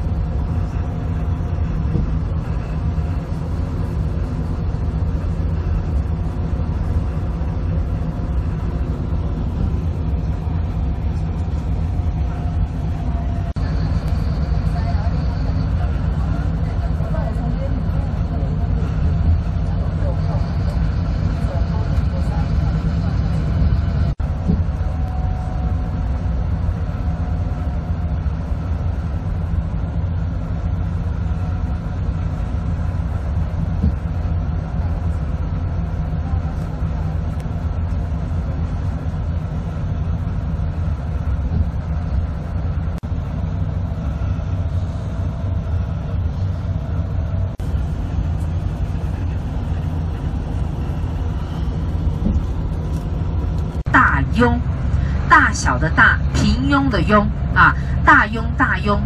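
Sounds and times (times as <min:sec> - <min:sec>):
bus engine and road noise: 0:00.0 - 0:59.0.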